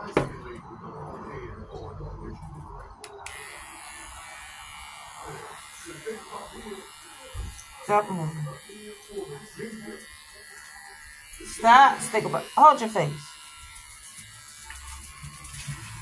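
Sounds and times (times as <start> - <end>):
electric hair clippers buzzing: 3.2 - 16.0.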